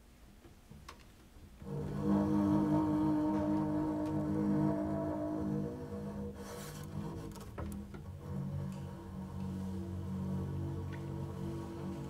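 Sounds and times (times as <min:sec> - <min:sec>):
bowed double bass note: 0:01.6 - 0:07.2.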